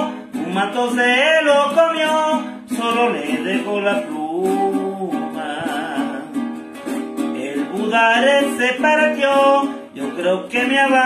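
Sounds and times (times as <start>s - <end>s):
person singing: 0.0s - 11.0s
small guitar strummed: 0.0s - 11.0s.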